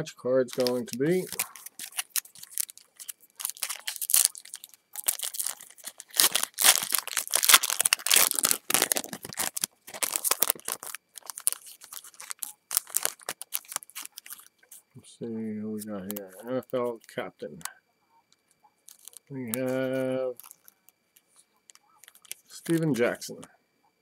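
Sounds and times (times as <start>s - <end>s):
foil wrapper crinkling and tearing: 0.5s - 14.8s, 18.9s - 20.8s, 21.7s - 23.0s.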